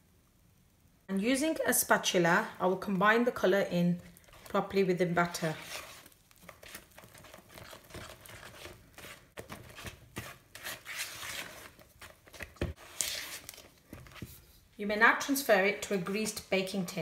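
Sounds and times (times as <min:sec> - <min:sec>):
spatula scraping cake batter: 0:04.2 - 0:14.6.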